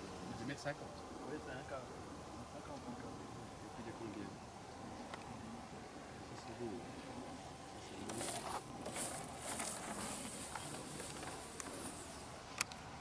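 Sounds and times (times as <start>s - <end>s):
model plane sliding on grass: 8.0s - 12.4s.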